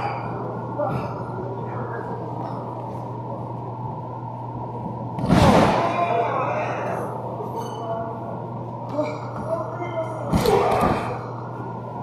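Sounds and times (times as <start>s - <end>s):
hum and murmur of hall: 0.0s - 12.0s.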